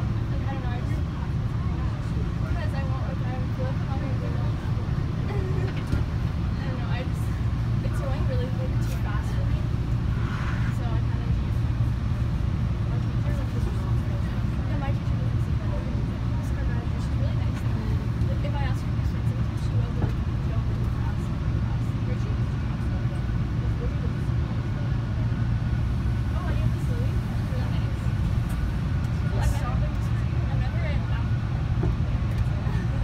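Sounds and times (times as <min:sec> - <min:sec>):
faint passenger voices: 0:00.0 - 0:33.0
subway car rumble and hum: 0:00.0 - 0:33.0.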